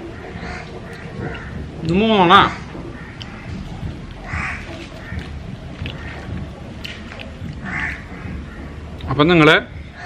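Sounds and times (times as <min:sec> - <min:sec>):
crow cawing: 0:00.0 - 0:06.8, 0:07.4 - 0:09.2, 0:09.8 - 0:10.0
low background rumble: 0:00.0 - 0:10.0.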